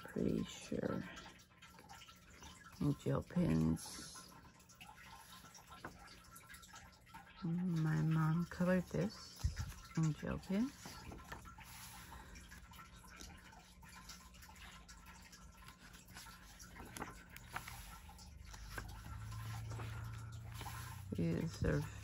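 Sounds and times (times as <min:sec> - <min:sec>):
low steady hum: 0:00.0 - 0:22.0
paper rustling: 0:15.6 - 0:22.0.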